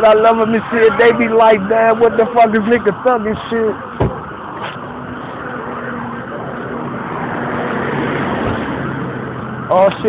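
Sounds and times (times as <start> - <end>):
motor vehicle passing: 4.2 - 10.0.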